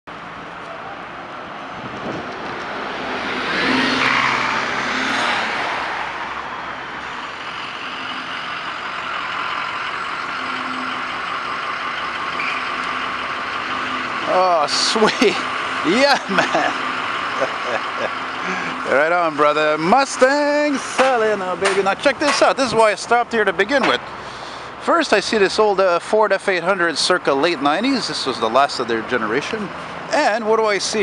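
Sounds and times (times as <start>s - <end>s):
traffic passing: 0.1s - 31.0s.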